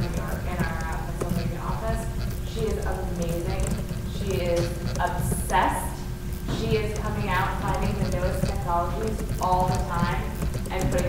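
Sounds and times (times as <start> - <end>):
steady low rumble: 0.0 - 11.0
woman speaking: 0.0 - 11.0.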